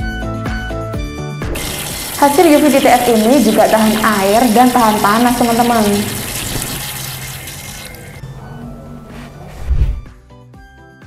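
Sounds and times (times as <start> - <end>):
background music: 0.0 - 11.0
tap water running into washbasin: 1.6 - 8.2
water splashing over plastic mug: 1.6 - 8.2.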